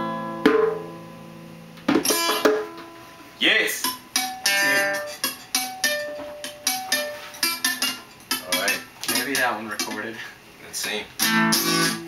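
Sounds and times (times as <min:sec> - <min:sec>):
guitar chords strummed: 0:00.0 - 0:10.1, 0:11.2 - 0:12.0
acoustic guitar picking: 0:00.0 - 0:10.2, 0:11.1 - 0:12.0.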